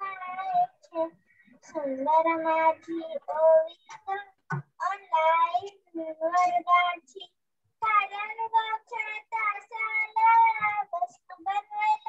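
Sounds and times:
girl singing unaccompanied: 0.0s - 12.0s.

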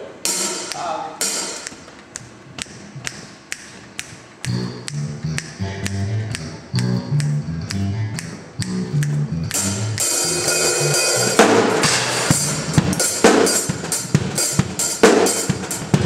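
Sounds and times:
drumsticks ticking: 0.6s - 1.0s, 1.6s - 9.7s
bass playing low line: 4.4s - 14.4s.

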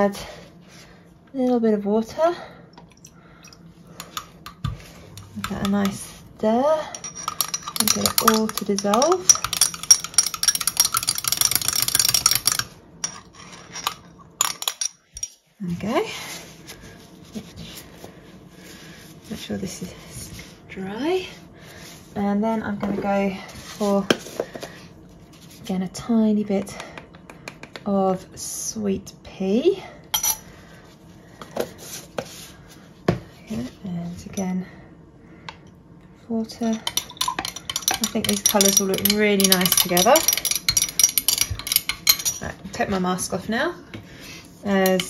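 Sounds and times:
teaspoon stirring in glass jar: 2.9s - 6.2s, 6.9s - 15.4s, 36.6s - 42.4s.

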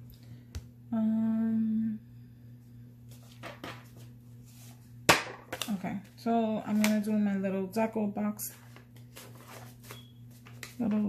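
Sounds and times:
woman humming: 0.9s - 2.1s.

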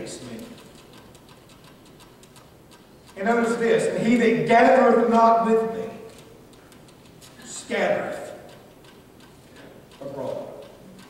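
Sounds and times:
faint rapid ticking: 0.0s - 11.0s
low hiss: 2.7s - 10.8s.

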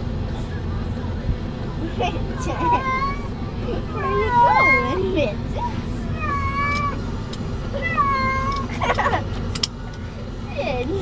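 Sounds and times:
truck rumble: 0.0s - 11.0s.

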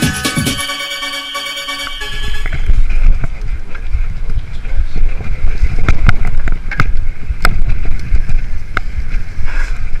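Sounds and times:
wind buffeting microphone: 2.4s - 10.0s.

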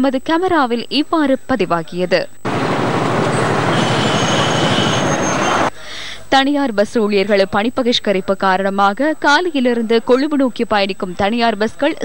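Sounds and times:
bus rushing noise: 2.5s - 5.7s
high steady squeal: 2.5s - 5.7s.

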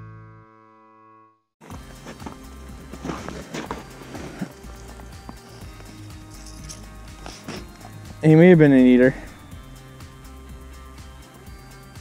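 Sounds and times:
clothing rustling: 1.6s - 8.0s
background music: 1.6s - 12.0s.

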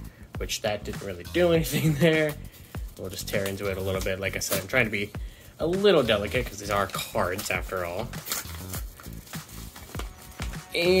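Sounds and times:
quiet background music: 0.0s - 11.0s
paper crinkling: 1.9s - 4.8s, 6.2s - 11.0s
padded mailer paper ripping: 7.2s - 11.0s.

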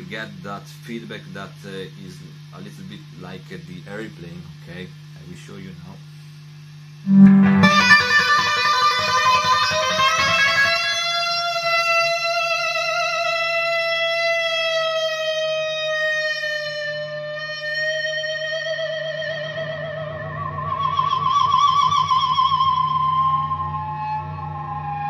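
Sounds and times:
electric guitar feedback: 6.9s - 25.0s.

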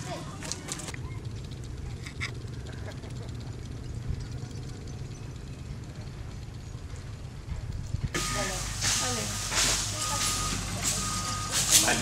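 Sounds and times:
low engine hum: 0.0s - 12.0s
reversing alarm beeping: 8.2s - 12.0s.

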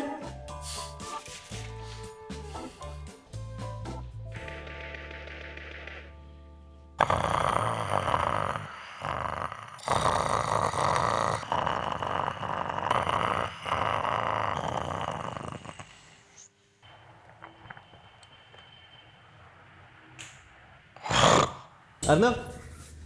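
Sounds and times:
man snoring loudly: 7.0s - 16.4s, 21.0s - 21.7s.

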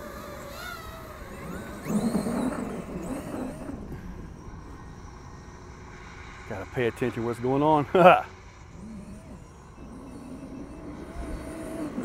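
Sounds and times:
electric motor whining: 0.0s - 12.0s.

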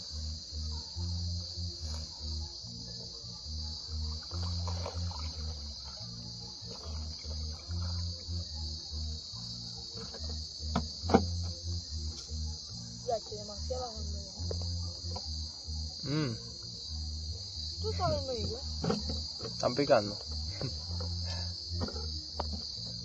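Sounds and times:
high-pitched insect chorus: 0.0s - 23.0s
low uneven pulsing: 0.0s - 23.0s.

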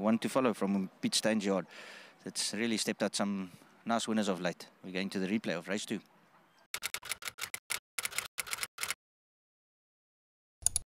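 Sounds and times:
rapid sharp clicks: 6.8s - 9.0s.

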